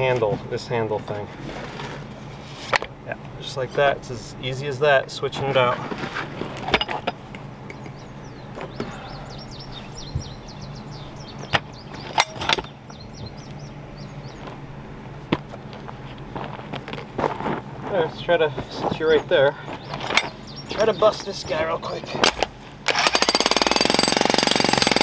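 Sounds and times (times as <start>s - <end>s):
steady low hum: 0.0s - 22.9s
high chirps: 7.4s - 14.4s.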